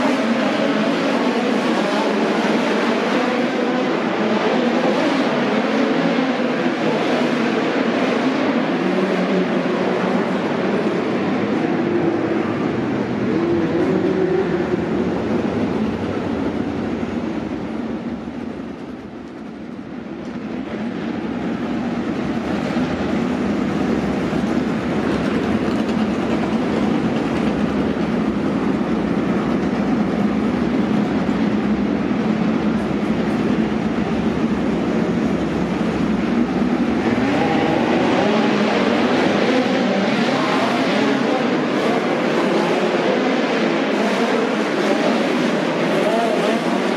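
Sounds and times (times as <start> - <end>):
race car engines: 0.0 - 46.9.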